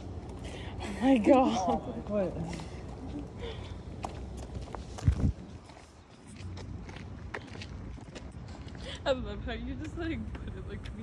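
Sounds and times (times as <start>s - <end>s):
footsteps on concrete: 1.0s - 9.0s.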